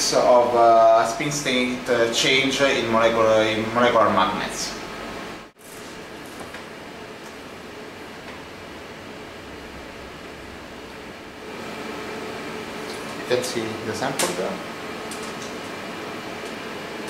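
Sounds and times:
ventilation fans hissing: 0.0 - 17.0.

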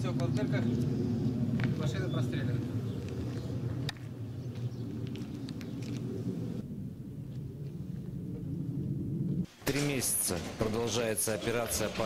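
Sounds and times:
low rumble: 0.0 - 9.5.

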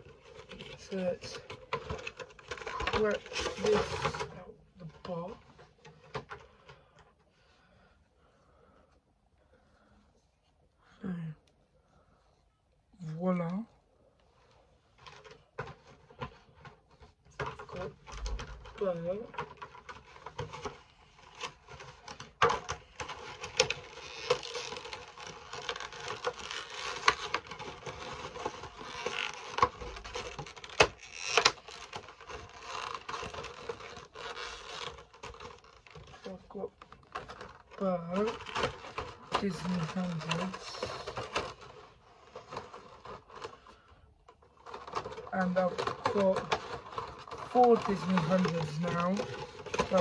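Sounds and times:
packaging crinkling: 0.0 - 4.3, 15.0 - 50.0.

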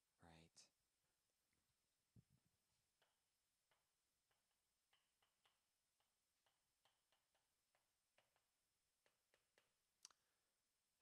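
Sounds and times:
chalk tapping and scratching on chalkboard: 2.9 - 10.0.

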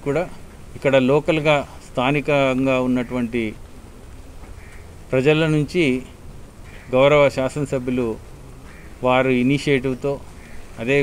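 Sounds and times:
narrator speaking: 0.0 - 3.6, 5.1 - 6.2, 6.9 - 8.2, 9.0 - 11.0
low steady background hum: 0.0 - 11.0.

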